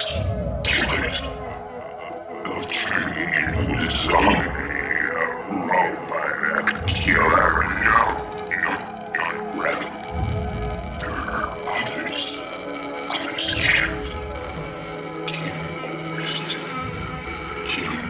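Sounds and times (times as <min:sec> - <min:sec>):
eerie film score: 0:00.0 - 0:18.0
warped growl-like sound effects: 0:00.0 - 0:18.0.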